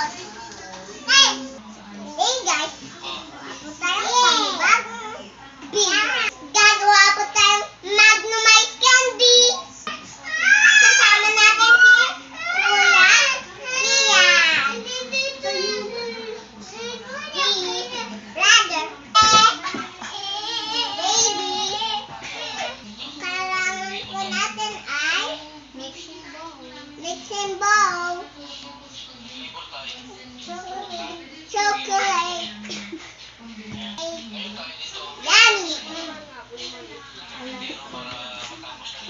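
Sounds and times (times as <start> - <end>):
child singing: 10.2 - 28.4, 30.4 - 32.7.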